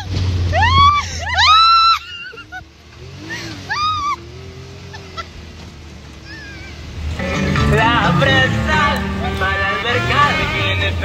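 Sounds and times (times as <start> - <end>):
off-road vehicle engine droning: 0.0 - 11.0.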